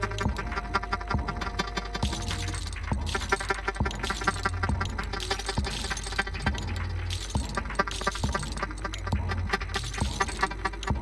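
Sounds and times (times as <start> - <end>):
metallic electronic clicks: 0.0 - 11.0.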